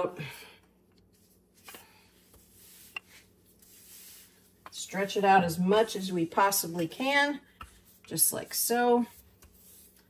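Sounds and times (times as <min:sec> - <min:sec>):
rolling pin rubbing on dough: 0:01.6 - 0:06.6, 0:07.5 - 0:10.0.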